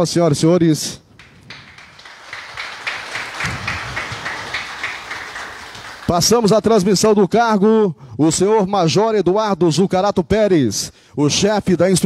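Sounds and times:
audience applauding: 1.1s - 6.8s.

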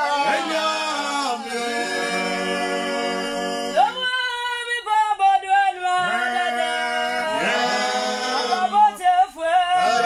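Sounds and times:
group singing a cappella: 0.0s - 10.0s.

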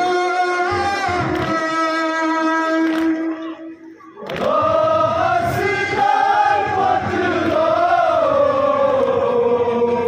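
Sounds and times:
men chanting a lament in unison: 4.2s - 10.0s.

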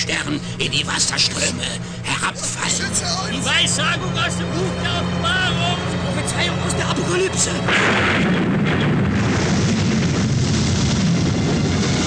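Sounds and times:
low rumbling roar: 7.6s - 12.0s.

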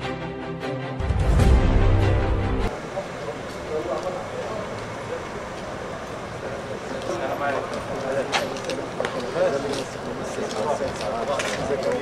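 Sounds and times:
people talking at a distance: 2.7s - 12.0s.

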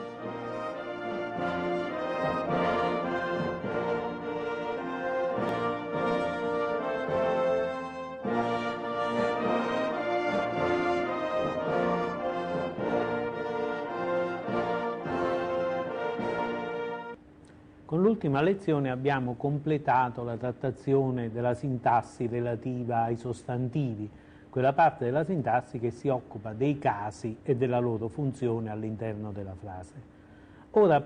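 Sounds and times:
orchestral music with brass: 0.0s - 17.2s.

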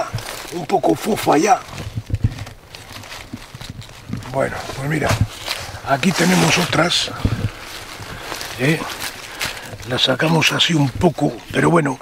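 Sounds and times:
rustling in dry leaves: 0.0s - 12.0s.

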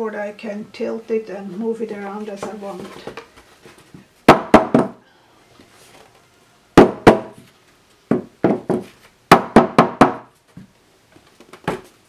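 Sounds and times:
clipboard knocking on table: 8.1s - 8.9s.

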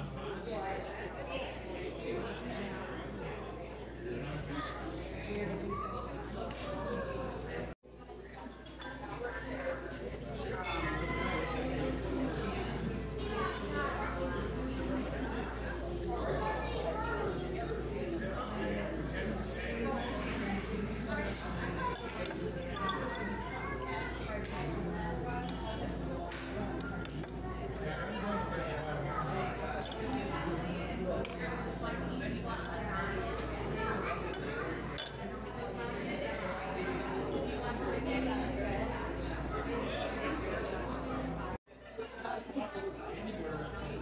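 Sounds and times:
hubbub of many voices: 0.0s - 44.0s
indistinct chatter of people: 0.0s - 44.0s.

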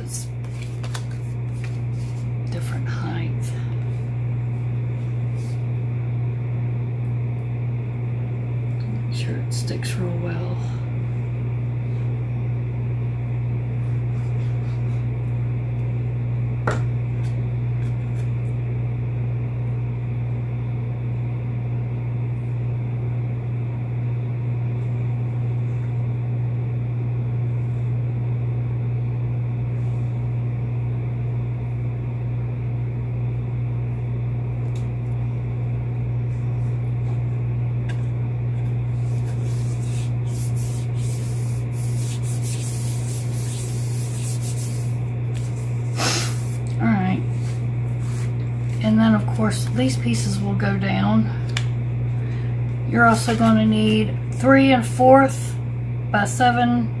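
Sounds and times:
steady low hum: 0.0s - 57.0s
hands rubbing cardstock: 0.4s - 2.3s, 38.6s - 46.6s.

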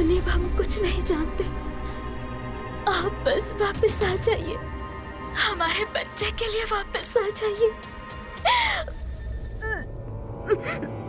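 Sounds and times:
soft background music: 0.0s - 11.0s
woman sobbing: 8.4s - 9.0s, 9.6s - 11.0s.

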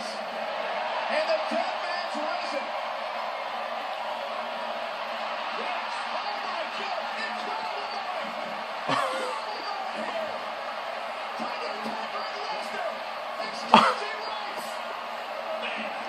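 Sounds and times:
arena crowd noise: 0.0s - 16.0s
commentators talking: 5.5s - 16.0s.

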